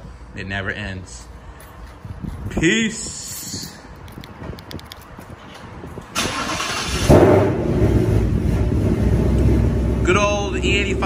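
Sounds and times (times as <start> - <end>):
car engine idling: 6.3 - 11.0.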